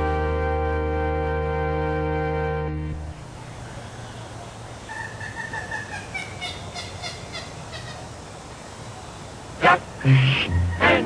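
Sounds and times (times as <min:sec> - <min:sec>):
large birds honking: 0:00.0 - 0:03.0, 0:09.6 - 0:11.0
outdoor hiss: 0:06.4 - 0:11.0.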